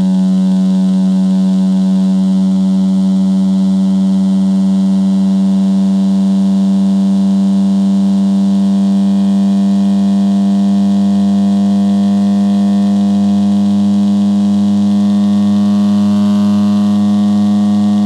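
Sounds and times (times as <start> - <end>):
low buzzing test tone: 0.0 - 18.0.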